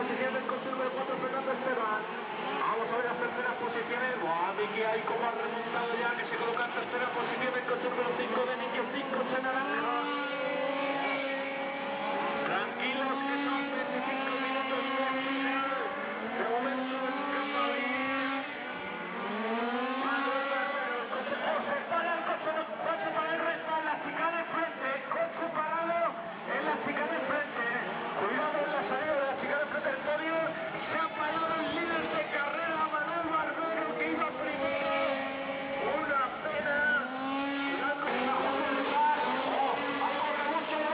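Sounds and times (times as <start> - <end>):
rc car engines whining: 9.3 - 22.0, 33.9 - 40.9.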